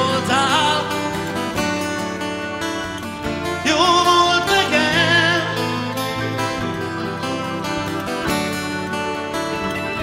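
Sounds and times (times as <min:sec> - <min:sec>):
man singing: 0:00.0 - 0:01.3, 0:03.3 - 0:06.2
live rock band playing: 0:00.0 - 0:10.0.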